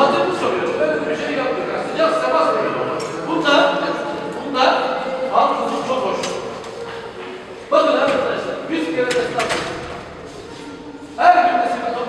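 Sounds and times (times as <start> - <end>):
people talking in a crowded room: 0.0 - 12.0.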